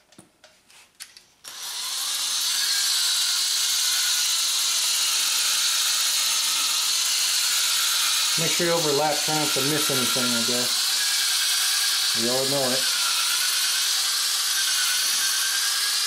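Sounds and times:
cordless drill spinning polishing ball: 1.4s - 16.0s.

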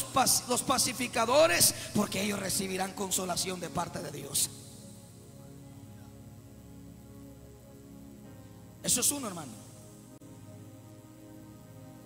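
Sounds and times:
man speaking into microphone: 0.0s - 4.6s, 8.8s - 9.7s
keyboard chords: 0.0s - 12.0s.

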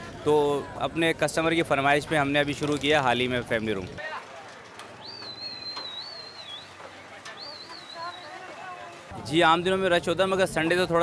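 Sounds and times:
high wavering whistles: 5.0s - 6.8s.

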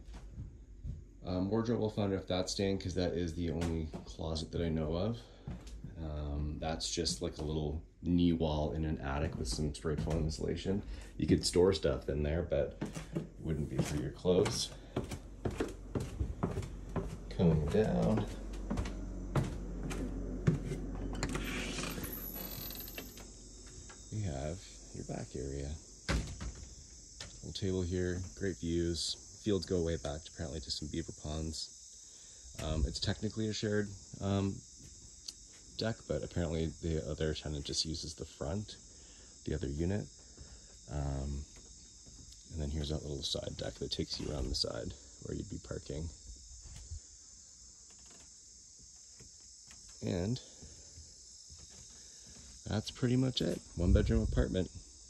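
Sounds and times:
faint crickets chirping: 0.0s - 55.0s
footfalls and knocks: 12.8s - 21.4s
door creaking and scraping: 12.8s - 23.4s.

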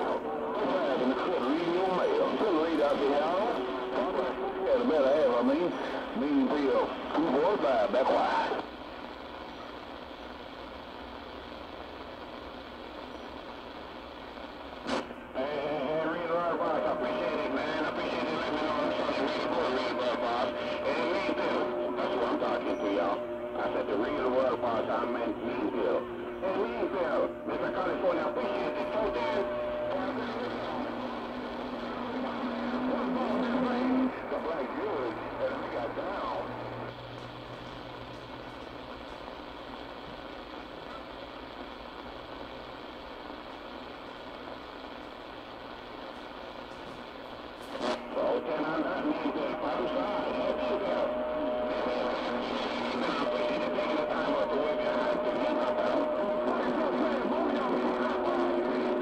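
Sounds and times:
radio click: 0.0s - 15.4s, 16.0s - 59.0s
garbled overlapping radio voices: 0.0s - 59.0s
radio static hiss: 0.0s - 59.0s
radio voice: 0.0s - 59.0s.

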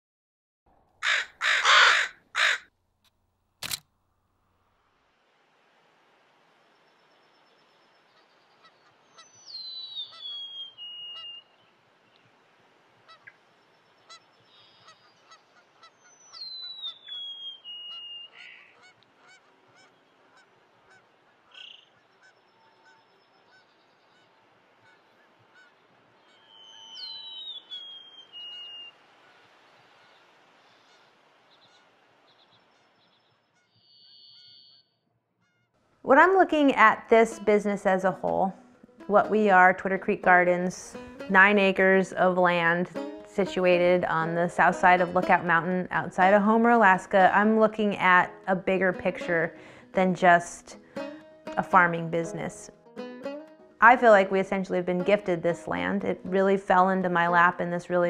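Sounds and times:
faint outdoor ambience: 0.7s - 58.0s
bird singing whistled song: 7.0s - 11.7s, 13.7s - 15.3s, 16.0s - 18.8s, 21.5s - 24.2s, 26.2s - 29.0s, 31.6s - 35.0s.

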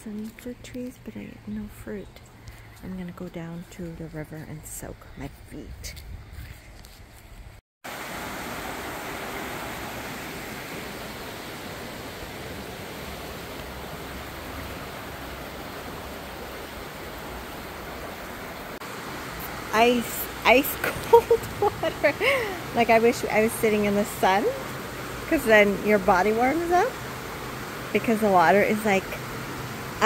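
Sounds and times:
river running over rocks: 7.9s - 30.0s.

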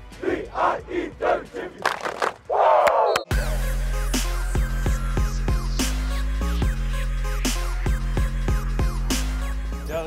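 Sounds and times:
team shouting a chant: 0.1s - 1.8s
sharp claps: 1.8s - 3.3s
electronic music with steady beat: 3.2s - 10.0s.

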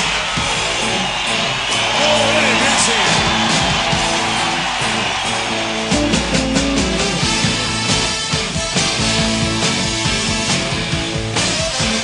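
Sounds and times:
instrumental band music: 0.0s - 12.0s.

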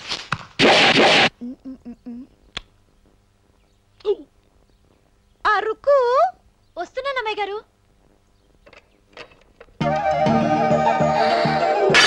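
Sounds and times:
loud burst of noise: 0.6s - 1.3s.

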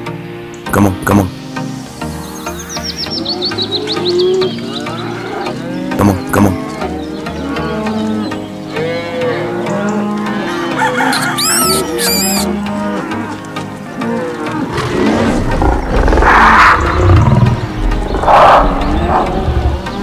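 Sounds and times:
background music: 0.0s - 20.0s
cattle mooing: 3.2s - 20.0s
thin high chirps: 11.4s - 12.5s
rough roars: 14.6s - 20.0s.

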